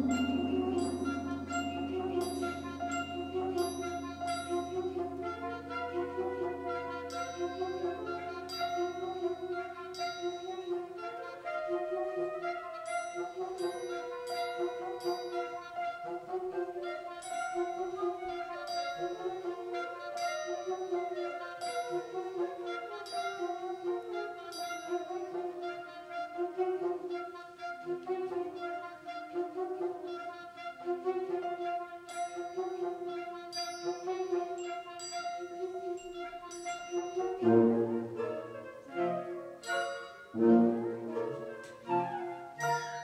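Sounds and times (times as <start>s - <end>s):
sharp high percussion strikes: 0.0s - 10.8s
flute line: 0.0s - 43.0s
wind band playing: 0.0s - 43.0s.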